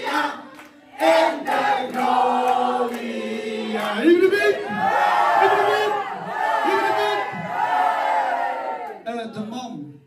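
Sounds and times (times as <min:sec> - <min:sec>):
crowd singing and shouting: 0:00.0 - 0:08.2.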